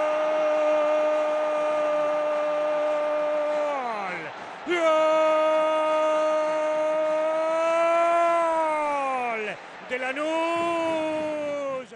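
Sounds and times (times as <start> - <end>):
commentator's sustained goal cry: 0.0 - 11.9.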